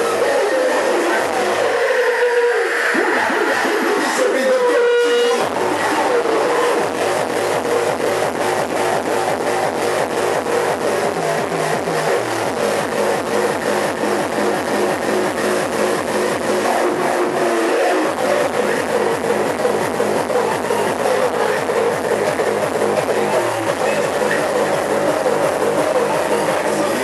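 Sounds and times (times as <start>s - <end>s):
loud distorted hard techno: 0.0s - 27.0s.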